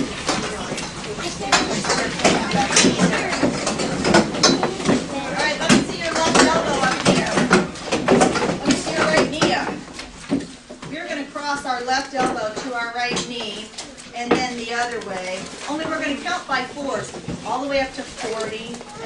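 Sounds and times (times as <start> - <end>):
children chattering: 0.0 - 7.6, 18.2 - 19.0
chairs knocking and scraping: 0.0 - 19.0.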